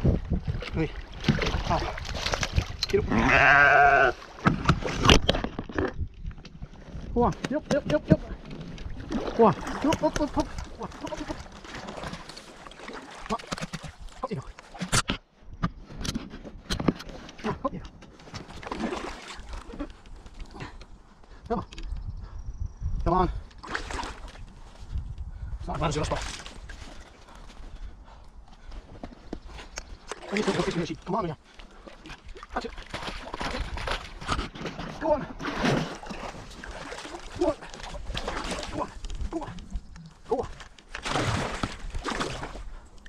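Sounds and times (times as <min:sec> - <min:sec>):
water sloshing around paddle: 0:00.2 - 0:03.0, 0:04.2 - 0:21.4, 0:23.5 - 0:25.0, 0:26.1 - 0:43.0.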